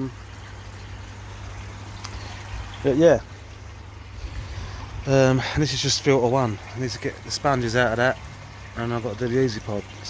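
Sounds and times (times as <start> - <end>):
low steady hum: 0.0 - 10.0
water running: 0.0 - 10.0.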